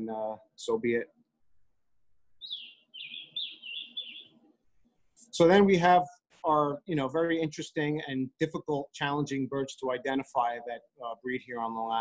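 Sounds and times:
songbird singing: 0:02.3 - 0:04.5.

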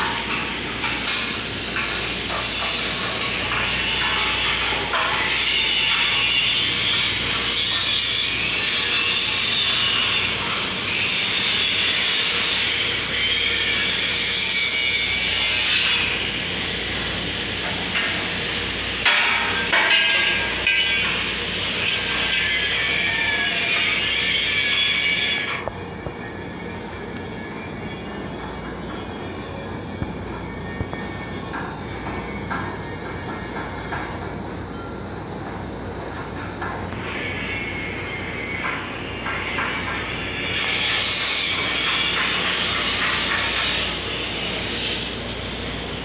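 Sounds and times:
angle grinders grinding steel: 0:00.0 - 0:16.2, 0:16.9 - 0:34.2.

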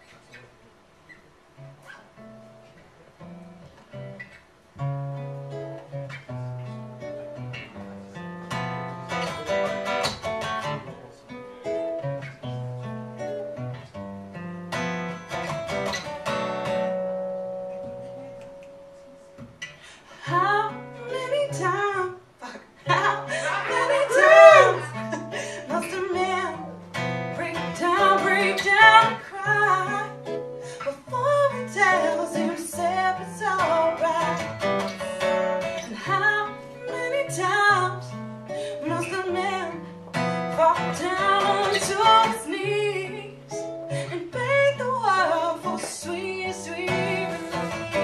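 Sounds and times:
strummed acoustic guitar: 0:01.1 - 0:48.0
woman singing: 0:20.2 - 0:34.7, 0:35.6 - 0:48.0.

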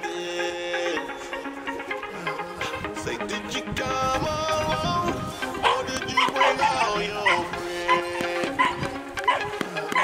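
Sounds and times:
background music: 0:00.0 - 0:10.0
puppy yipping: 0:05.6 - 0:10.0.

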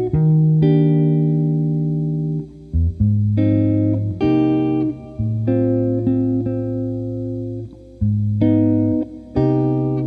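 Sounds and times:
electric guitar jazz chords: 0:00.0 - 0:10.0.

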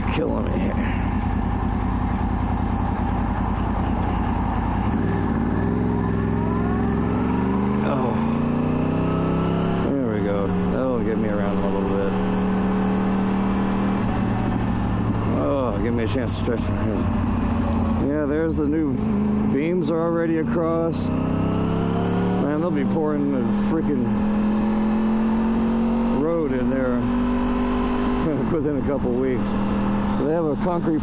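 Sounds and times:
motorcycle engine accelerating: 0:00.0 - 0:31.0.

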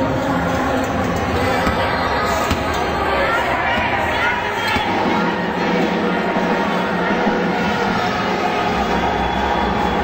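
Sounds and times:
crowd noise: 0:00.0 - 0:10.0
music: 0:00.0 - 0:10.0.

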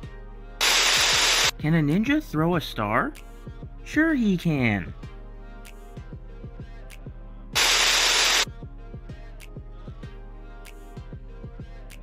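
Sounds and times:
background music with steady beat: 0:00.0 - 0:12.0
burst of static white noise: 0:00.6 - 0:01.5, 0:07.6 - 0:08.5.

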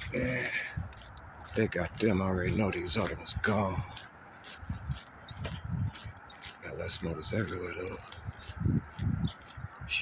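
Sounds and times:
footsteps on wet gravel: 0:00.0 - 0:10.0.

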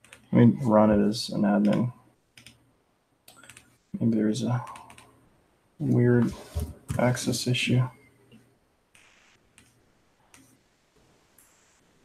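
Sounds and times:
computer keyboard clicks: 0:03.3 - 0:03.7.

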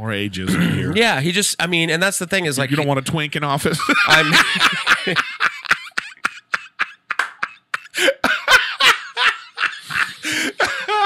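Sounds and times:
men laughing: 0:03.6 - 0:11.0.

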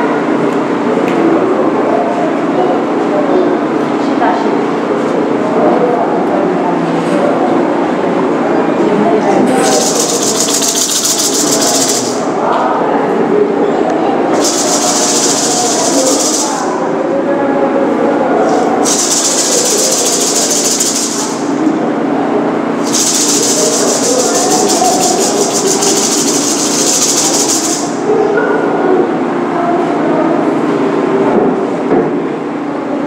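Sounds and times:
shaker rattling: 0:09.6 - 0:12.3, 0:14.3 - 0:16.7, 0:18.5 - 0:21.6, 0:22.8 - 0:28.0.

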